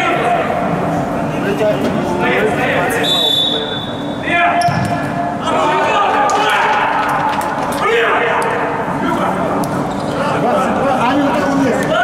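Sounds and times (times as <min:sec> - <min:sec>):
players shouting: 0:05.3 - 0:08.9.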